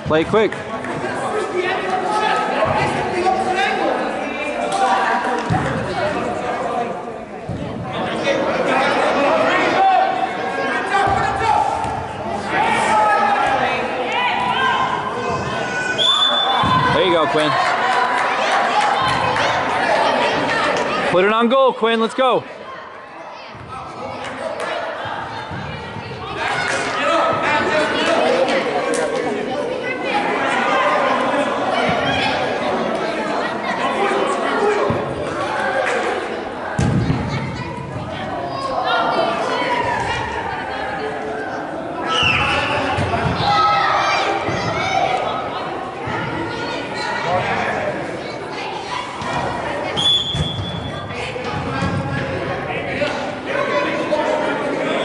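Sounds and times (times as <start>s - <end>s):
echoing chatter and calls: 0.0s - 55.0s
high whistle tone: 16.0s - 16.6s.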